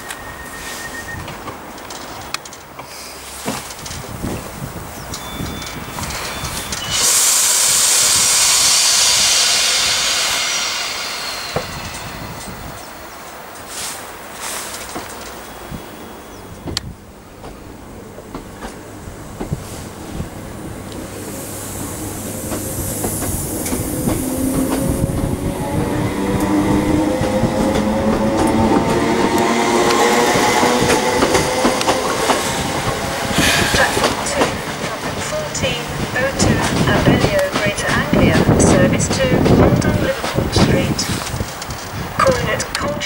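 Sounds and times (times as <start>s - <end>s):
wheels clicking over rail joints: 1.2s - 6.9s, 13.2s - 15.6s
electric train motors whining: 4.8s - 13.3s, 17.8s - 40.1s.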